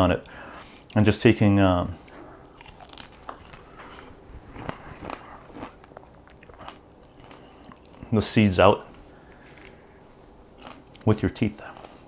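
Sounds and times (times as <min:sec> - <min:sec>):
chewing small crunches: 0:02.0 - 0:08.1, 0:08.9 - 0:09.9, 0:10.6 - 0:12.0.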